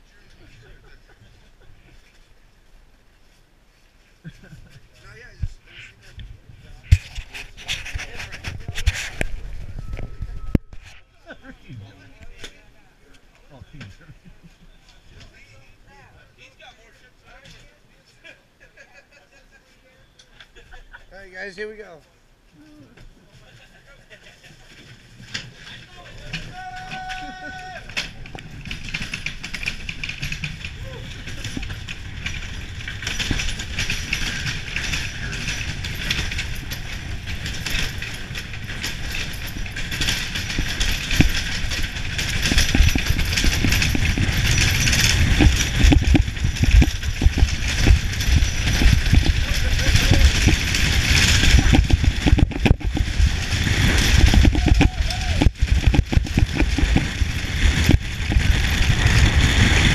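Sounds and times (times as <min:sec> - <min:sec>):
sled rattling: 0:24.2 - 0:59.9.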